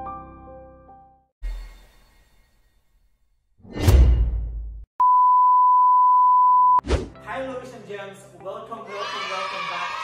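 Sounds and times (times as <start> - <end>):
high pure-tone beep: 5.0 - 6.8
short swish: 6.8 - 7.2.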